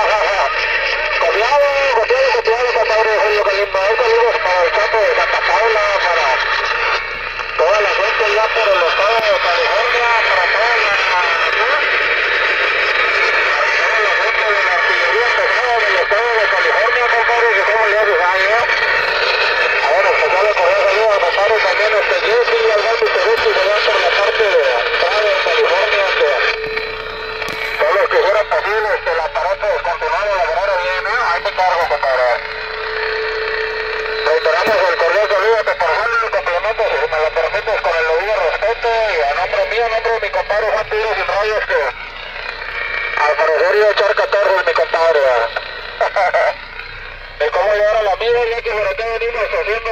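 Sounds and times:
steady tone: 0:00.0 - 0:49.9
tinny voices over radio: 0:00.0 - 0:49.9.

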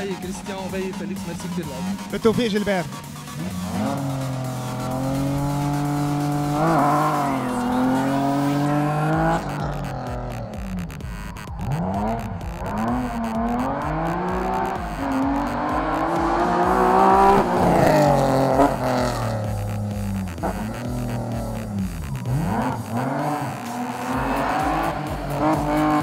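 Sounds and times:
background music with steady beat: 0:00.0 - 0:26.0
race car engine revving: 0:00.0 - 0:26.0.

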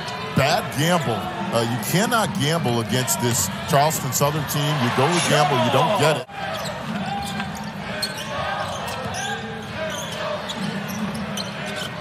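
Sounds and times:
shoe squeaks on court: 0:06.5 - 0:12.0.

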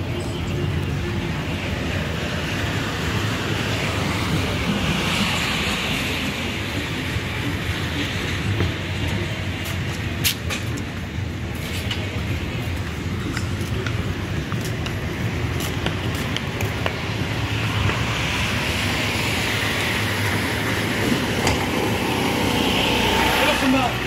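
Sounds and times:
low street rumble: 0:00.0 - 0:24.0.

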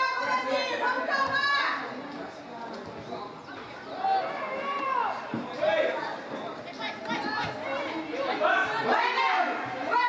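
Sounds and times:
open-air field ambience: 0:00.0 - 0:10.0.

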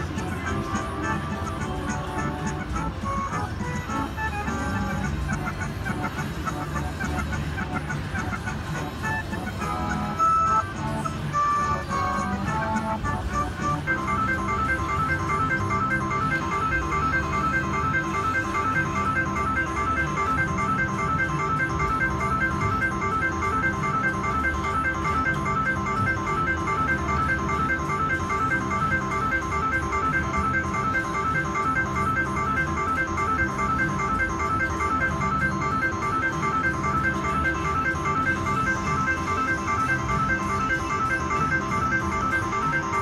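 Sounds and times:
slot machine jingle: 0:00.0 - 0:43.0
credit count-up chimes: 0:11.6 - 0:43.0.

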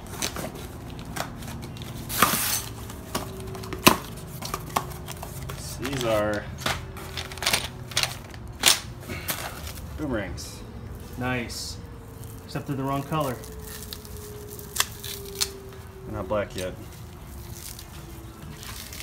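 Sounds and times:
cardboard tearing and rustling: 0:00.0 - 0:09.9, 0:12.0 - 0:15.8, 0:16.5 - 0:19.0.

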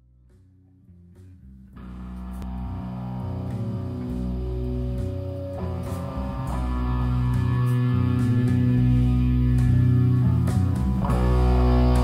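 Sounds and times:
guitar-led rock instrumental: 0:01.8 - 0:12.0.

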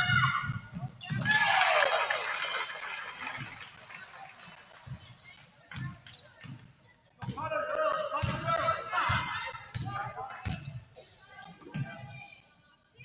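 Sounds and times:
sneaker squeak: 0:00.0 - 0:01.3, 0:04.6 - 0:07.4, 0:09.1 - 0:13.0
crowd cheering and shouting: 0:01.2 - 0:03.4.

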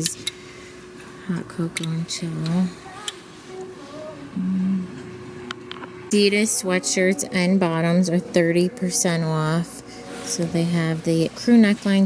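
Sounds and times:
faint steady hum: 0:00.0 - 0:12.0
woman humming filler sound: 0:04.0 - 0:05.1.

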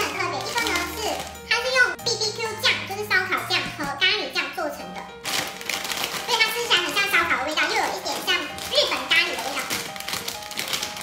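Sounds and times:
person talking: 0:00.0 - 0:05.1, 0:06.3 - 0:09.8
background music with low notes: 0:00.0 - 0:11.0.

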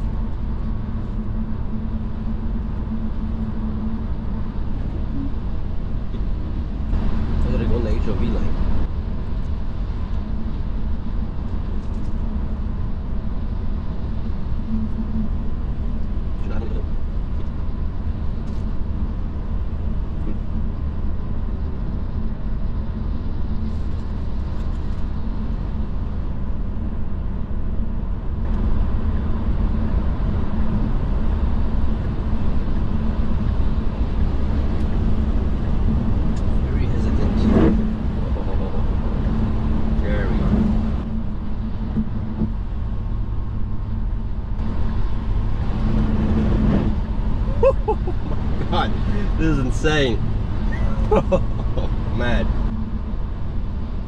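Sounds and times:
low road rumble with hum: 0:00.0 - 0:54.0.

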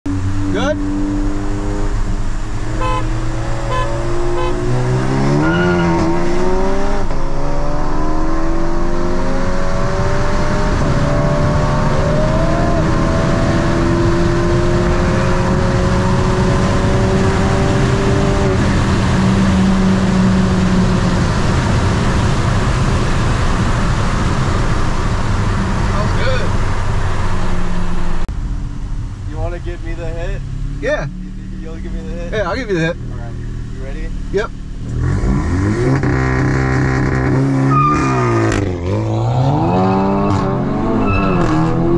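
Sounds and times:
car engine accelerating: 0:00.1 - 0:41.9
road and wind noise: 0:00.1 - 0:41.9.

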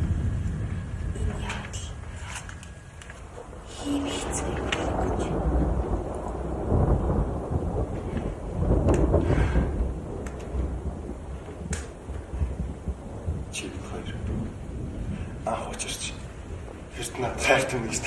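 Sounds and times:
low rumbling thunder: 0:00.0 - 0:18.0.

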